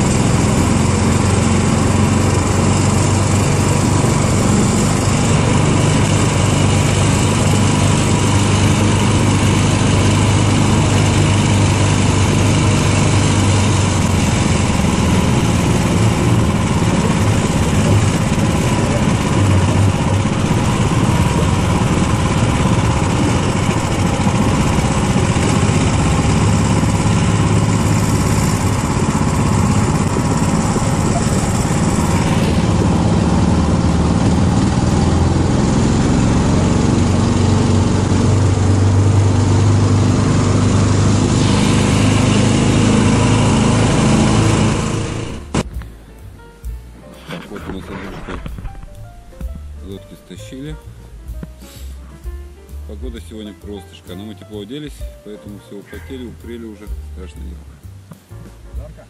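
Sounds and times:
vehicle engine running steadily: 0:00.0 - 0:59.0.

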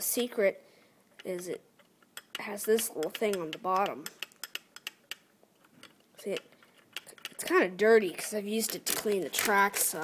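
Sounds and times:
plastic model clicks and taps: 0:01.2 - 0:07.6.

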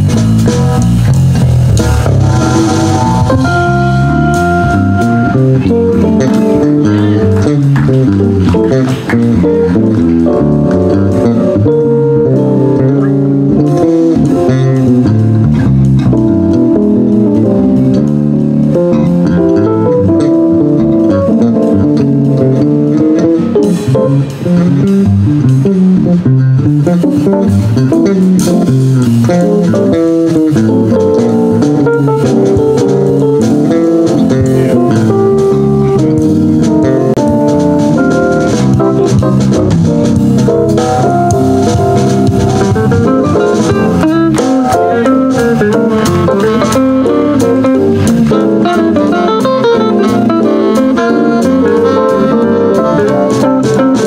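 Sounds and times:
bass guitar: 0:00.0 - 0:54.0
drum kit: 0:00.0 - 0:54.0
electric guitar: 0:00.0 - 0:54.0
keyboard: 0:00.0 - 0:54.0.

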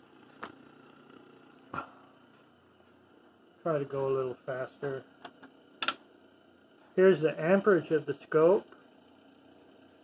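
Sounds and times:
motor and transformer hum: 0:00.0 - 0:10.0.

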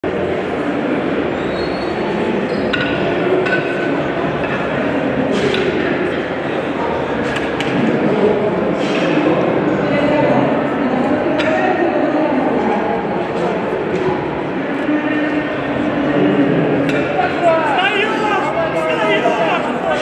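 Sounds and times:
background chatter: 0:00.0 - 0:20.0.

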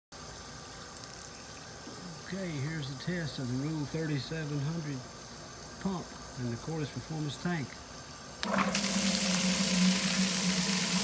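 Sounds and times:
water rushing from a pump: 0:08.4 - 0:11.0.

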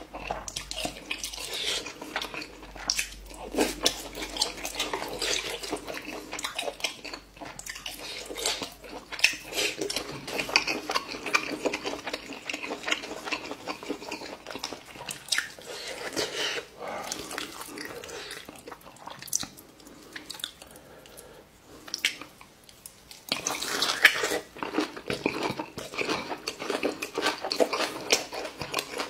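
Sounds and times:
chewing and slurping noodles: 0:00.0 - 0:20.8, 0:23.3 - 0:29.0.

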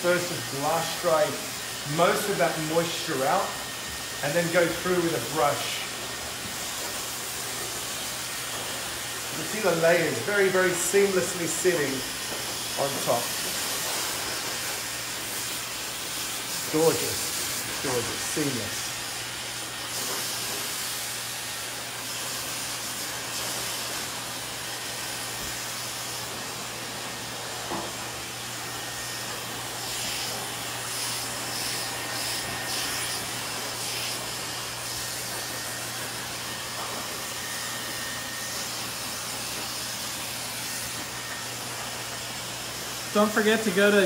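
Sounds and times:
hair dryer running: 0:00.0 - 0:44.0.

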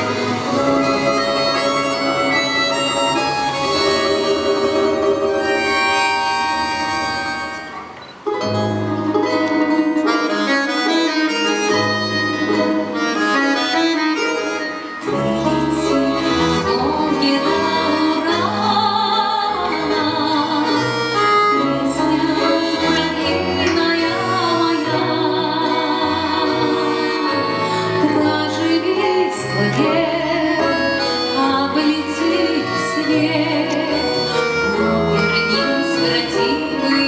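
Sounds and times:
plucked strings: 0:00.0 - 0:27.2
button accordion melody: 0:00.0 - 0:37.0
deep plucked balalaika notes: 0:00.0 - 0:37.0
wind instrument: 0:00.0 - 0:37.0.

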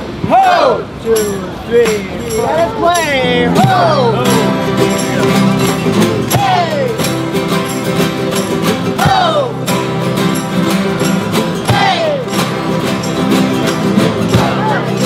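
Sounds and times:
guitars strumming: 0:01.2 - 0:15.0
person shouting: 0:02.4 - 0:04.3.

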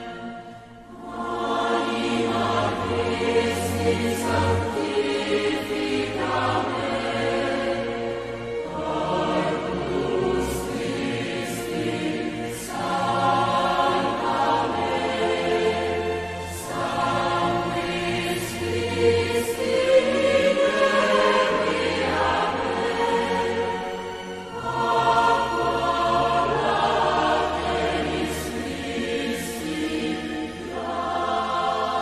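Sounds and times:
choir singing a hymn: 0:00.0 - 0:32.0.

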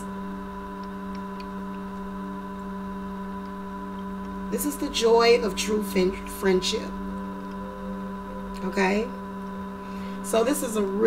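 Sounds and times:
steady hum of held tones: 0:00.0 - 0:11.0.

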